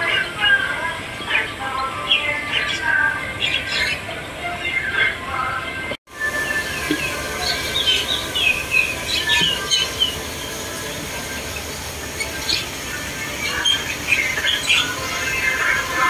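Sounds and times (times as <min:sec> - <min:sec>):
birds chirping: 0:00.0 - 0:16.0
open-air background: 0:00.0 - 0:16.0.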